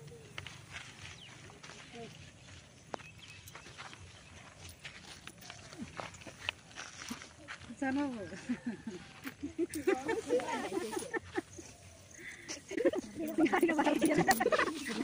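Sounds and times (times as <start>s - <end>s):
voices murmuring: 5.2s - 15.0s.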